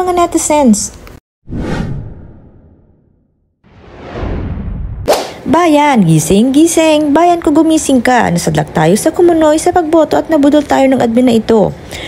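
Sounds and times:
whoosh sound effect: 1.5 - 5.5.

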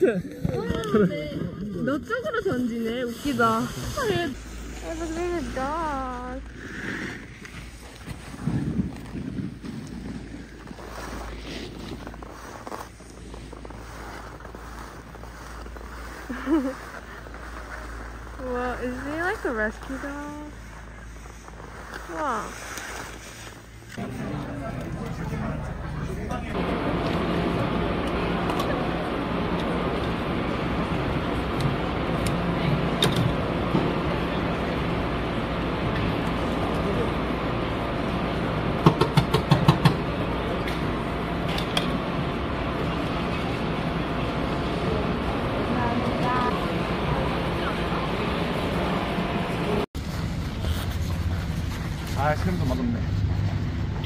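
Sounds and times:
low engine-like drone: 0.0 - 54.0
wind buffeting microphone: 7.6 - 11.0.

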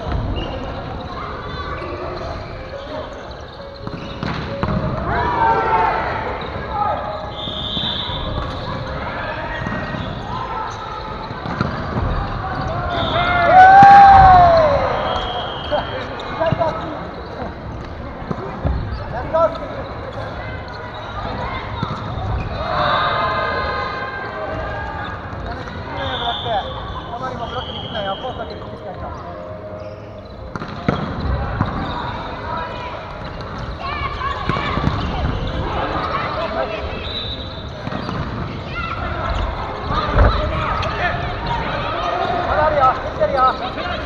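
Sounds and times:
players' voices echoing: 0.0 - 44.0.

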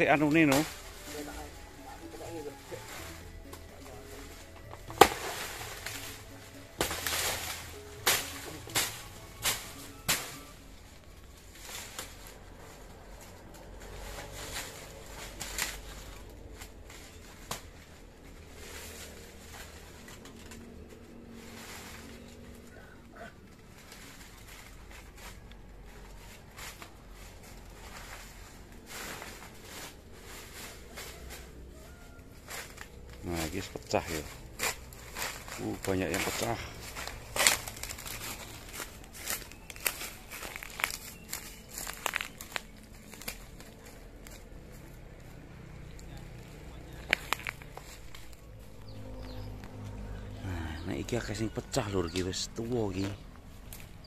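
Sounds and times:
footsteps through undergrowth: 0.0 - 54.0
rustling in undergrowth: 0.0 - 54.0
machete chopping plant: 4.9 - 6.2, 6.8 - 10.6.

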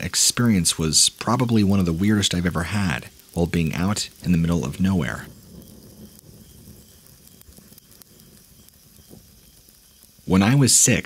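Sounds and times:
light crackles and patter: 0.0 - 11.0
low hum: 1.6 - 10.4.

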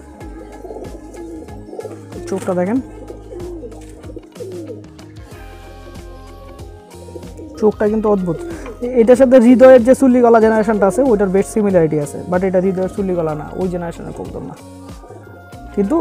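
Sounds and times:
pigeons cooing: 0.0 - 15.8
background music: 0.0 - 16.0.

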